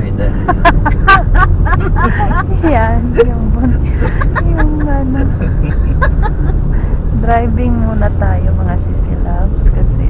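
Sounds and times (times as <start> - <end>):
car engine and tyres rumble: 0.0 - 10.0.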